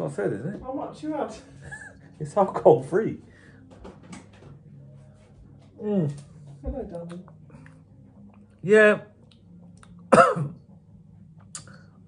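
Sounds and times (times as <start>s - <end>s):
man clearing throat: 10.1s - 10.6s.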